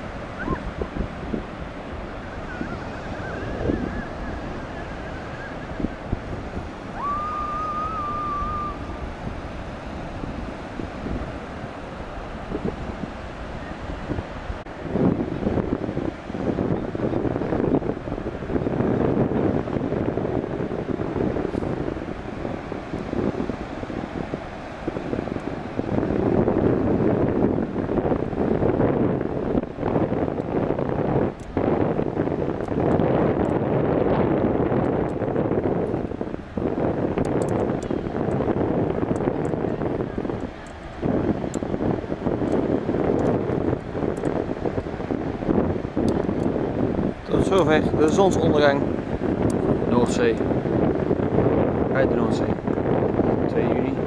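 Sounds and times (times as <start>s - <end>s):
surf washing: 0.0s - 54.0s
wind buffeting microphone: 0.0s - 54.0s.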